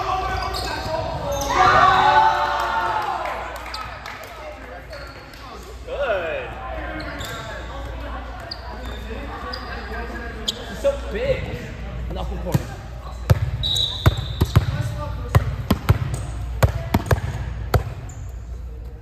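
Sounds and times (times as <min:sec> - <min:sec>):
players calling out in echoing gym: 0:00.0 - 0:19.0
sneaker squeaks on court: 0:00.1 - 0:01.7, 0:07.0 - 0:07.7, 0:08.4 - 0:10.8, 0:13.1 - 0:14.9
volleyball bouncing on floor: 0:13.3 - 0:18.0.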